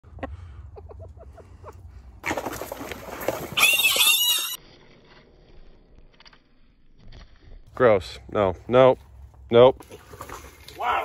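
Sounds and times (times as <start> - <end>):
shrill animal squeal: 3.6 - 4.6.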